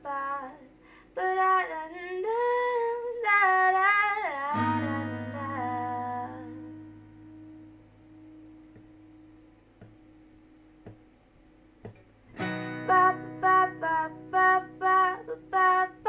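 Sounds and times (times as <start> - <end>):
woman singing: 0.0 - 6.8, 12.8 - 16.0
acoustic guitar: 3.8 - 11.1, 11.8 - 16.0.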